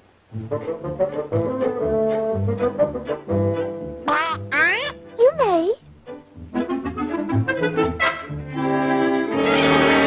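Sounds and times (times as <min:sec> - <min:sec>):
orchestral cartoon music: 0:00.3 - 0:10.0
cartoon duck quacking voice: 0:04.0 - 0:05.8.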